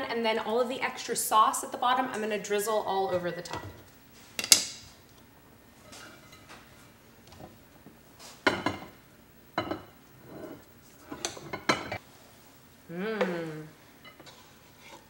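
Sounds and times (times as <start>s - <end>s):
cookware clattering: 8.4s - 9.0s, 9.6s - 12.0s
wooden spoon scraping: 10.2s - 12.5s, 14.0s - 15.0s.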